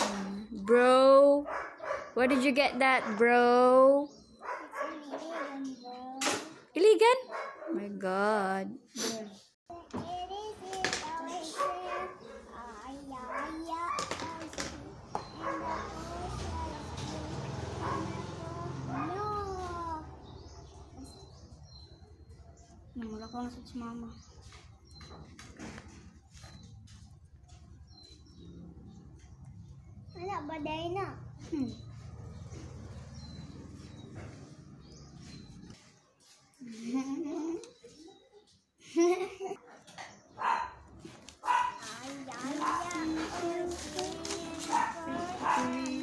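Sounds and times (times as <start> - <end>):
dog barking: 1.4 - 3.2, 4.4 - 5.7, 7.2 - 7.8, 11.4 - 12.6, 13.2 - 14.1, 15.3 - 16.1, 17.8 - 19.4, 39.7 - 42.0, 42.6 - 43.4, 44.6 - 46.0.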